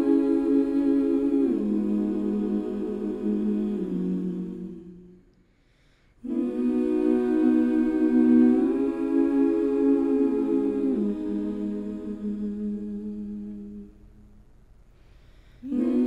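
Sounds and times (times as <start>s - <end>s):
wordless humming voices: 0.0s - 5.4s, 6.2s - 16.0s.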